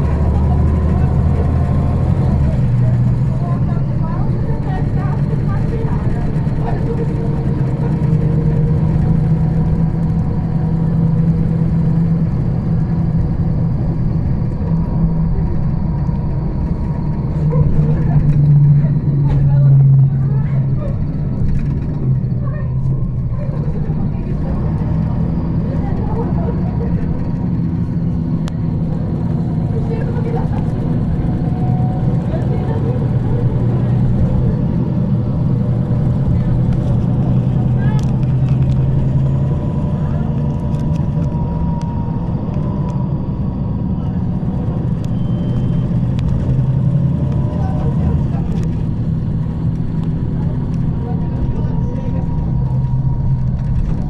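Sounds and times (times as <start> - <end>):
bus engine low hum: 0.0 - 54.0
faint whine: 0.0 - 54.0.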